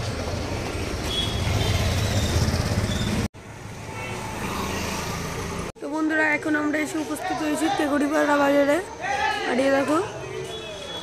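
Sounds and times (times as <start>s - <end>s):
quiet street noise: 0.0s - 11.0s.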